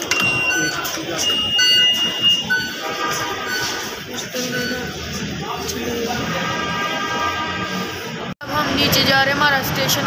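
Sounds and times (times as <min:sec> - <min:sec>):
short electronic tones: 0:00.1 - 0:05.1.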